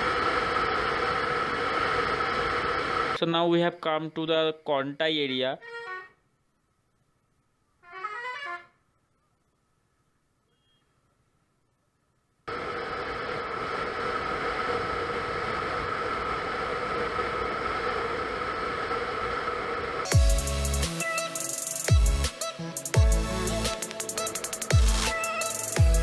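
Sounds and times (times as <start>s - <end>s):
motorcycle engine drone: 0.0s - 3.2s, 12.5s - 20.8s.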